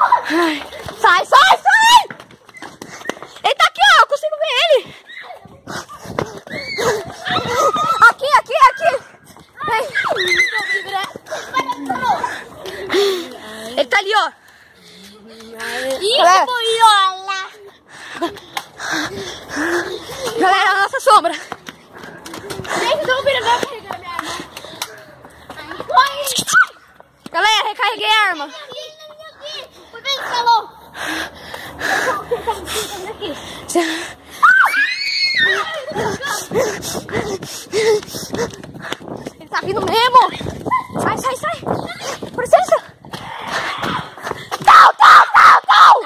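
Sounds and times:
young voices shouting: 0.0s - 2.2s, 3.5s - 14.2s, 34.3s - 37.9s, 39.7s - 46.0s.

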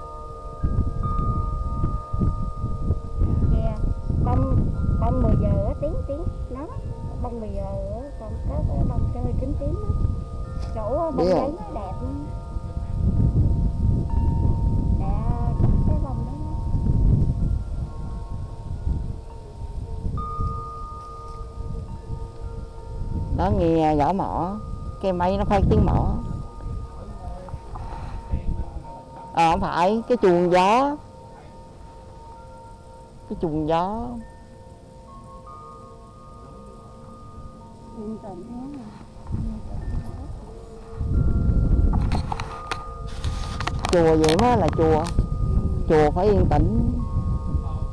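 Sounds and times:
wind chime ringing: 0.0s - 47.9s
wind rumble on microphone: 0.0s - 47.9s.

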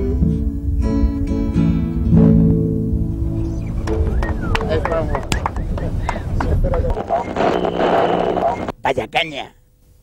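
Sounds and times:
steady held tone: 6.9s - 8.8s.

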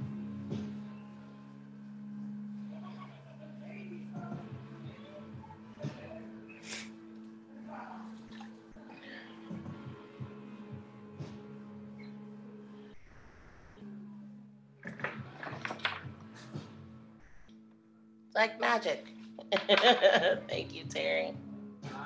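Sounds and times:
wet clay handling and splashing: 8.0s - 8.8s.

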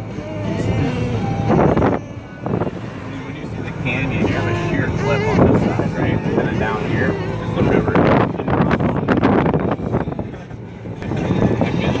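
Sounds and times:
indistinct talking: 0.0s - 12.0s
low vehicle cabin rumble: 0.0s - 12.0s.

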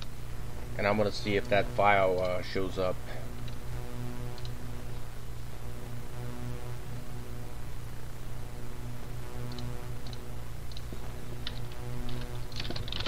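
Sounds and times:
low throbbing hum: 0.0s - 13.0s.

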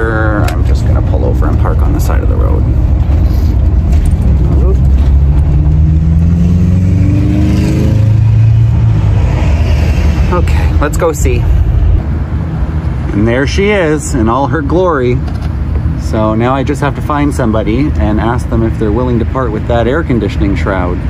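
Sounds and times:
engine running: 0.0s - 19.6s
road rumble: 0.0s - 21.0s.

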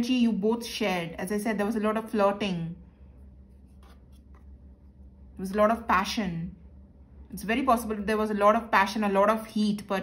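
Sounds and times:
low steady hum: 0.0s - 10.0s
cards scraping on a tabletop: 3.5s - 4.5s.

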